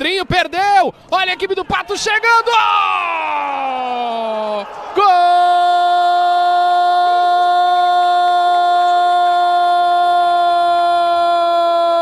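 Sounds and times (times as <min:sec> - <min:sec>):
sports commentator shouting goal: 0:00.4 - 0:12.0.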